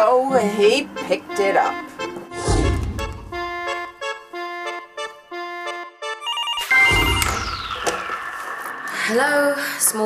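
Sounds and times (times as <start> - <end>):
soft keyboard melody: 0.0 - 8.1
low thump: 2.3 - 3.4
desk telephone trilling beeps: 6.2 - 8.4.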